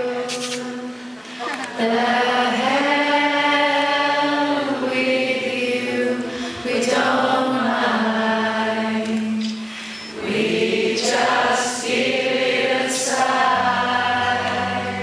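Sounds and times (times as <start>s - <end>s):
crowd singing along: 0.0s - 15.0s.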